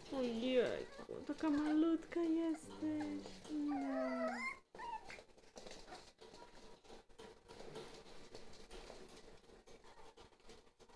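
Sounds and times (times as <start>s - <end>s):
puppies scuffling and clicking: 0.0s - 10.9s
puppy whining: 0.5s - 6.6s.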